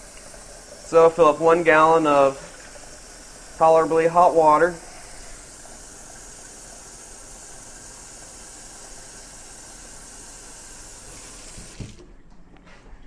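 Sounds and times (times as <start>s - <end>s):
faucet running into pitcher: 11.0s - 12.1s.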